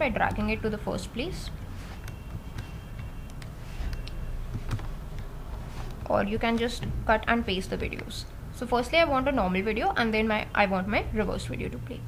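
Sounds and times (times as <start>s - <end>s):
computer mouse clicks: 1.5s - 6.9s.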